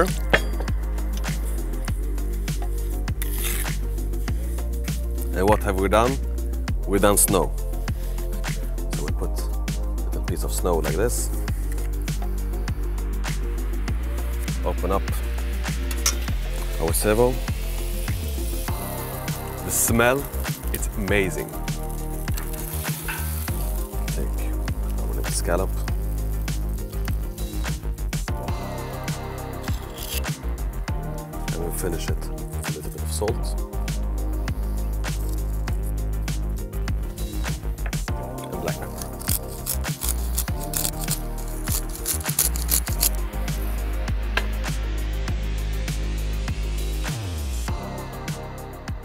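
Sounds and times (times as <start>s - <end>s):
background music: 0.0s - 49.0s
pepper mill grinding: 3.2s - 3.7s, 18.9s - 26.0s, 29.6s - 30.3s, 38.4s - 43.2s
scallops sizzling in butter: 3.2s - 4.1s, 15.9s - 28.0s, 38.6s - 43.9s.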